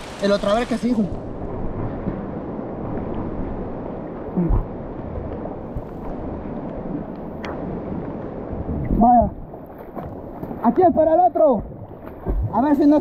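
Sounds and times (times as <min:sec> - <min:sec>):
floodwater rushing and churning: 0:00.0 - 0:13.0.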